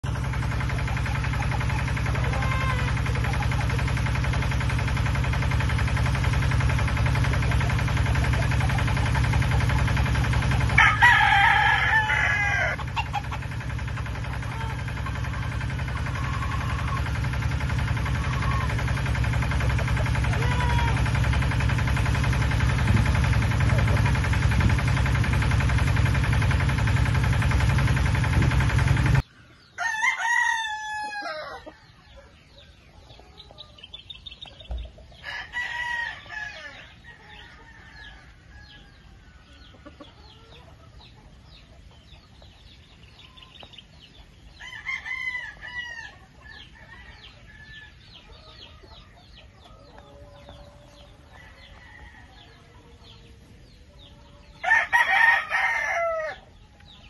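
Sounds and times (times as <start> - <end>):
rooster crowing: 2.0 - 3.6, 10.4 - 13.5, 14.3 - 17.2, 20.2 - 21.3, 29.8 - 32.2, 35.2 - 39.7, 44.5 - 48.4, 50.0 - 53.1, 54.2 - 56.5
short rooster calls: 2.1 - 3.3, 10.7 - 13.2, 14.4 - 17.2, 20.2 - 21.3, 54.6 - 56.4.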